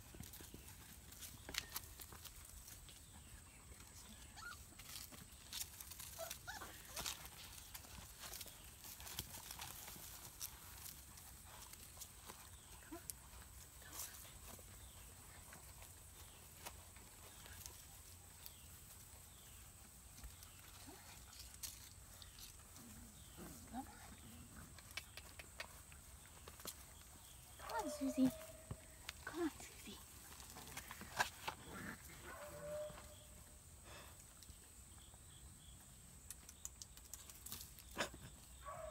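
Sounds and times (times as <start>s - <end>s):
soft puppy vocal sounds: 2.7s - 5.0s
puppy feet tapping and clicking: 24.7s - 31.3s, 36.2s - 38.0s.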